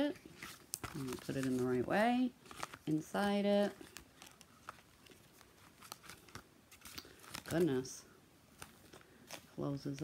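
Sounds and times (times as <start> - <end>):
pen and notebook handling: 0.1 - 7.9, 8.6 - 10.0.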